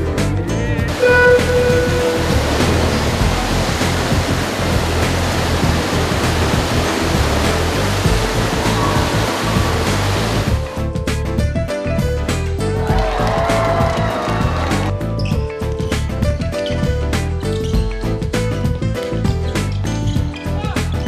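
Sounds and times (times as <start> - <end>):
bass of background music: 0.0 - 21.0
water splashing: 0.9 - 10.6.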